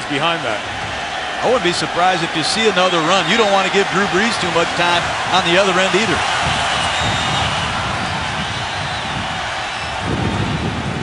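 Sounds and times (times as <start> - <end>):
large stadium crowd noise: 0.0 - 11.0.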